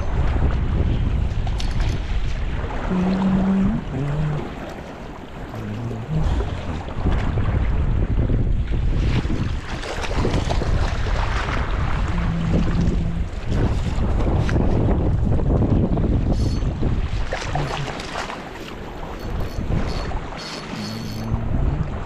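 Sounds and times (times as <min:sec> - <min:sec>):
rushing river current: 0:00.0 - 0:22.0
wind buffeting microphone: 0:00.0 - 0:22.0.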